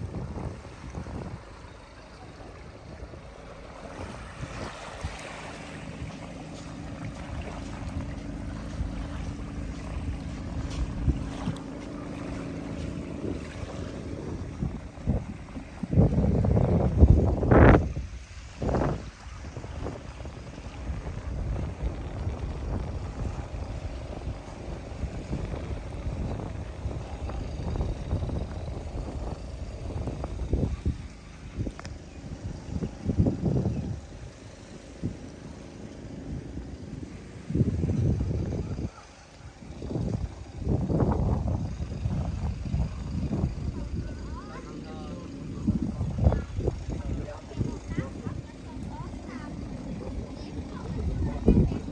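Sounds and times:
boat engine droning: 0.0 - 51.9
wind buffeting microphone: 0.0 - 51.9.

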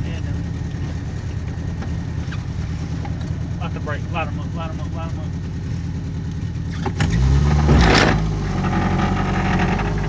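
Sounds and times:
car engine droning: 0.0 - 10.0.

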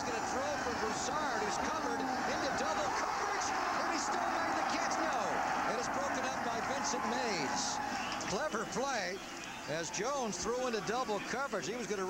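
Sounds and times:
stadium crowd cheering: 0.0 - 12.0.

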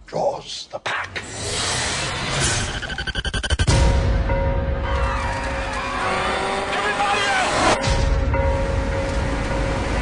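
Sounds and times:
crowd screaming in panic: 4.8 - 7.8.

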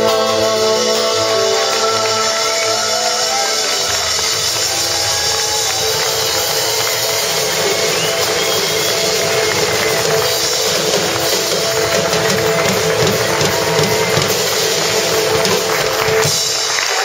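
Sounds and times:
drum kit with cymbals: 0.0 - 17.0.

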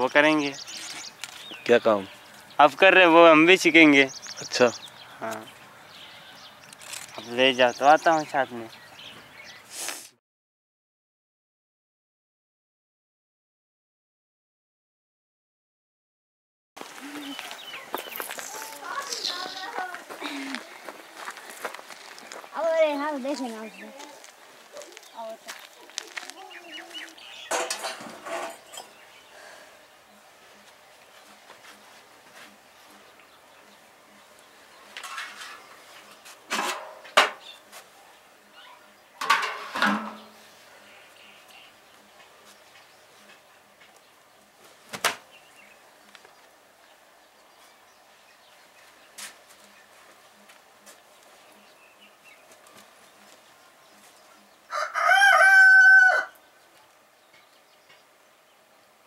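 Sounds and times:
metal pot clattering on stone: 27.5 - 28.9, 35.0 - 35.6, 39.2 - 40.3
rooster crowing: 54.7 - 56.4.

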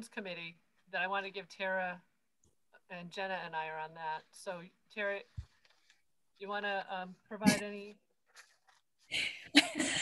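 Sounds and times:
woman's breathy laugh: 9.1 - 10.0.

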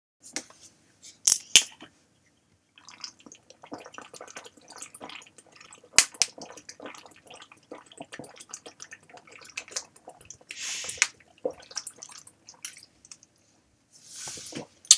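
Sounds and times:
person gulping and swallowing: 2.8 - 13.2, 14.4 - 14.9.

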